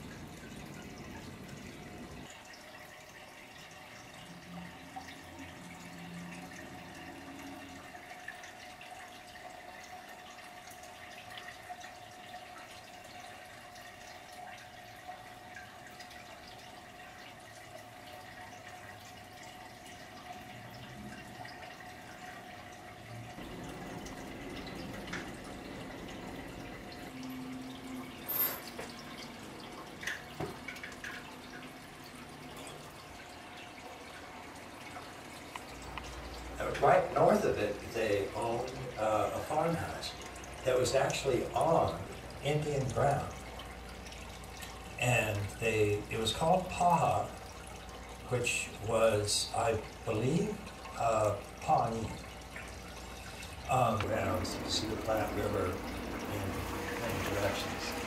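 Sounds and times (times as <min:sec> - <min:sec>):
aquarium filter trickling water: 0:00.0 - 0:58.0.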